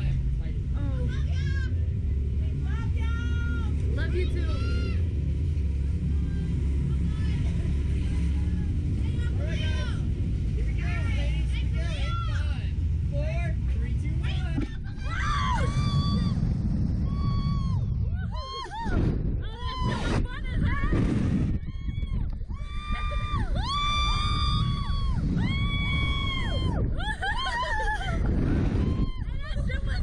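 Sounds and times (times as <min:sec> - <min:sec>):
indistinct chatter: 0:00.0 - 0:30.0
steady low rumble: 0:00.0 - 0:30.0
wind gusts on microphone: 0:00.0 - 0:30.0
people squealing: 0:14.8 - 0:20.9, 0:21.6 - 0:30.0.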